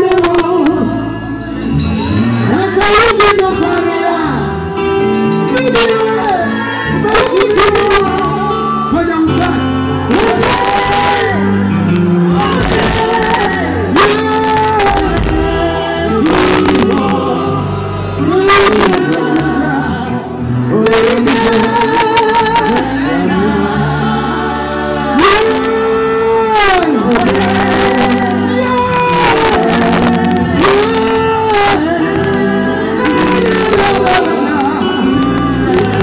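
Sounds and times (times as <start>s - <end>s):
bass notes: 0.0s - 36.0s
woman singing gospel: 5.7s - 36.0s.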